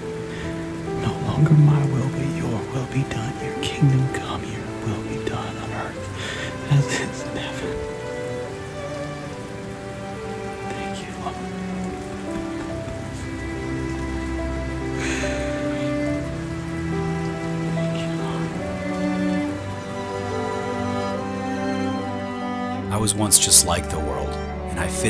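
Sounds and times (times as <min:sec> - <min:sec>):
rain-like hiss: 0:00.0 - 0:25.0
slow music of held chords: 0:00.0 - 0:25.0.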